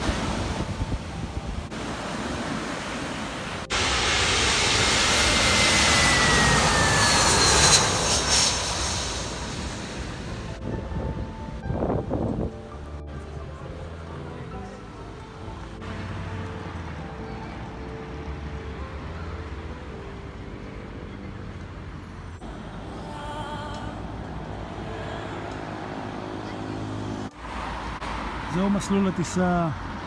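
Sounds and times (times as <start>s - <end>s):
jet airliner passing low: 0.2s - 12.6s.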